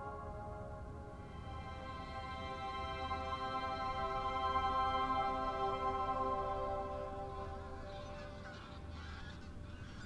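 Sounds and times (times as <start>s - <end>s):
background music: 0.0s - 10.0s
geese honking: 6.7s - 10.0s.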